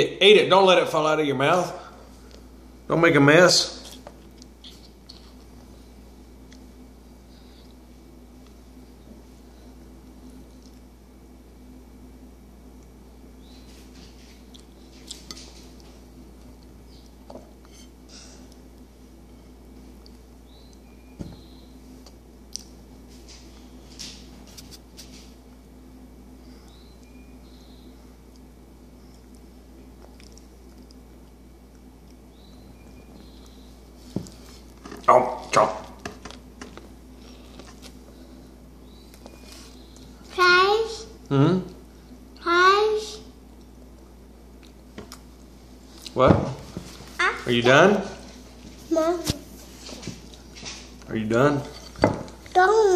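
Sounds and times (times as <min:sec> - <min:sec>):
low electrical hum: 0:00.0 - 0:52.9.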